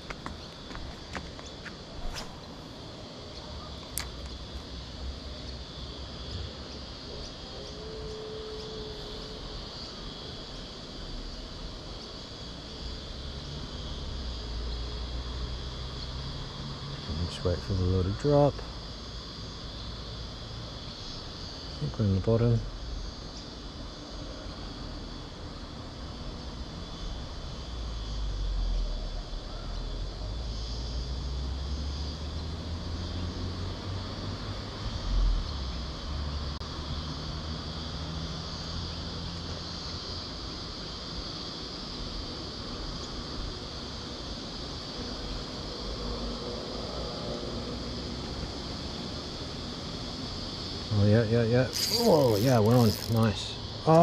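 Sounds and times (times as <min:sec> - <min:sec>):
insect chirring: 0:00.0 - 0:54.0.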